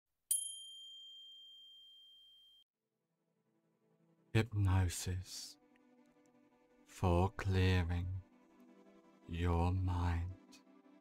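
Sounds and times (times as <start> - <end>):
high bell chime: 0.3 - 2.6.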